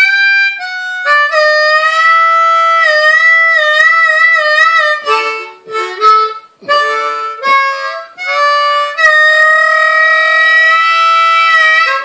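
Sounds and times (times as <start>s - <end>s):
harmonica long held note: 0.0s - 12.0s.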